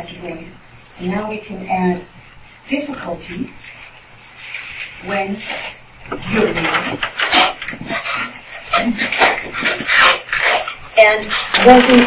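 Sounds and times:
marker squeaking on paper: 0:06.8 - 0:12.0.

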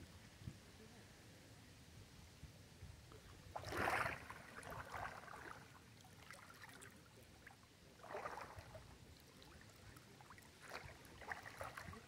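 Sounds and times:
water splashing and trickling: 0:03.1 - 0:12.0.

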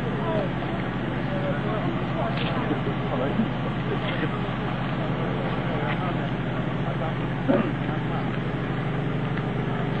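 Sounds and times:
engine running steadily: 0:00.0 - 0:10.0.

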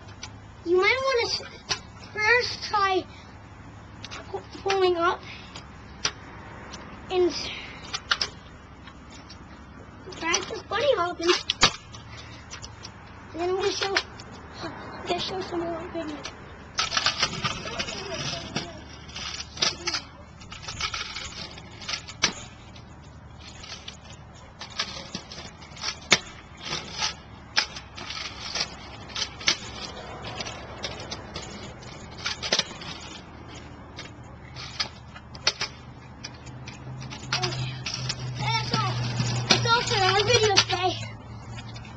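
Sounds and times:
scooter wheels clacking on concrete: 0:00.0 - 0:03.2, 0:03.8 - 0:41.9
person speaking: 0:37.3 - 0:41.2.

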